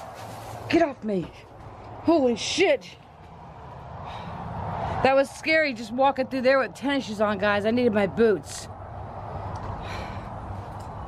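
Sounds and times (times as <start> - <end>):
short breathy rustle: 0.0 - 0.7.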